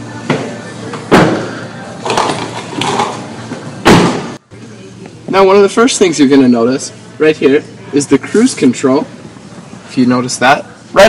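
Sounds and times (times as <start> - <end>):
car door slamming: 3.8 - 4.4.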